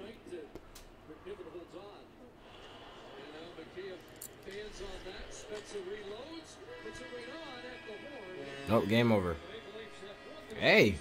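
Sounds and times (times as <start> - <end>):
commentator speaking: 3.6 - 11.0.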